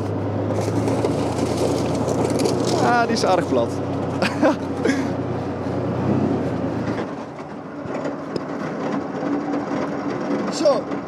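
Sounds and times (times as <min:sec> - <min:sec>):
diesel engine under throttle: 0:00.0 - 0:11.0
car being crushed: 0:00.5 - 0:03.2.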